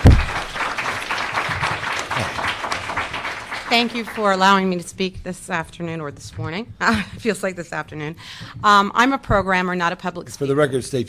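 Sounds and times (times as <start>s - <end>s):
loud low thump: 0.0s - 0.6s
audience applauding: 0.0s - 4.7s.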